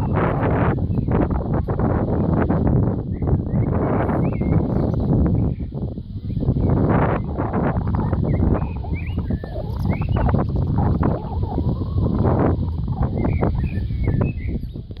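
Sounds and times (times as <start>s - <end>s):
small birds chirping: 0.0s - 15.0s
wind rumbling on microphone: 0.0s - 15.0s.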